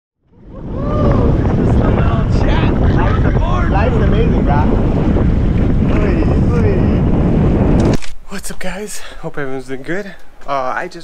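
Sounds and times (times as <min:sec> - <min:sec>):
heavy wind buffeting microphone: 0:00.2 - 0:11.0
men whooping and shouting: 0:00.4 - 0:04.8.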